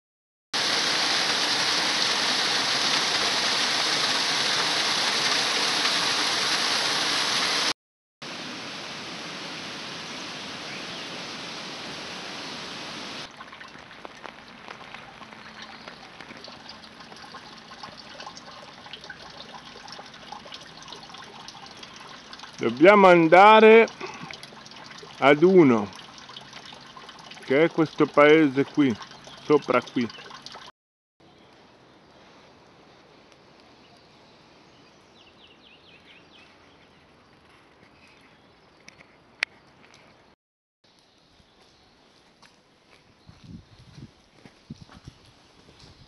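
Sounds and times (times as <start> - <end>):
shallow stream flowing: 0.6 - 7.7, 8.4 - 30.7
water rushing over weir: 0.6 - 7.7
water trickling: 13.2 - 30.7.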